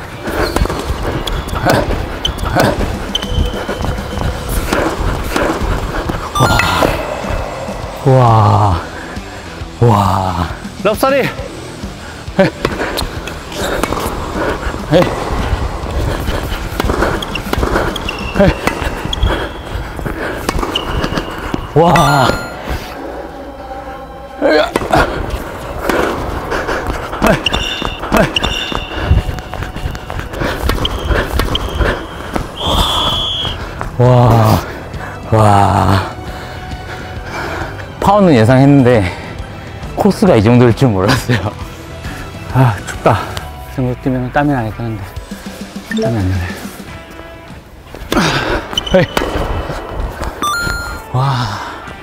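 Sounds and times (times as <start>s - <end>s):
sneakers squeaking on court: 0.4s - 5.0s, 16.8s - 19.8s, 20.4s - 22.8s, 27.3s - 33.6s, 48.7s - 49.4s, 50.4s - 51.1s
rising electronic chime: 6.4s - 8.9s, 21.8s - 23.0s, 50.4s - 51.2s
rackets striking tennis ball: 12.6s - 14.2s, 16.7s - 19.3s, 20.4s - 22.4s, 48.1s - 50.4s
tennis ball bouncing: 20.4s - 21.3s.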